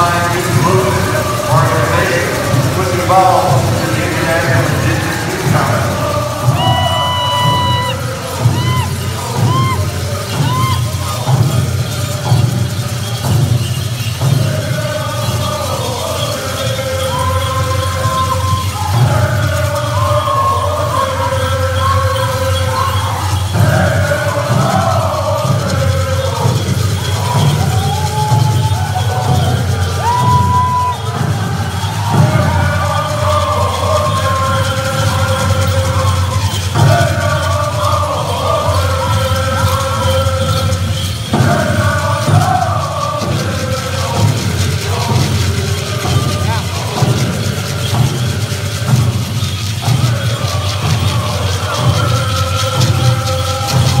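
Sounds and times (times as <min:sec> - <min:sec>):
group chanting in unison: 0:00.0 - 0:13.6, 0:14.2 - 0:54.0
steady drumbeat: 0:00.0 - 0:54.0.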